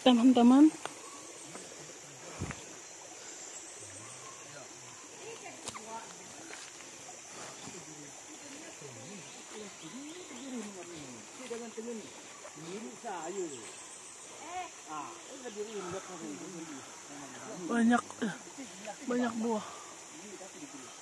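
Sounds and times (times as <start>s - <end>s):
forest insects droning: 0.0s - 21.0s.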